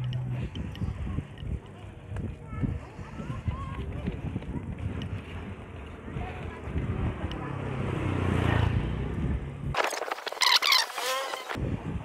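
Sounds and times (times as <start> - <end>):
vehicle engine passing: 5.2 - 11.6.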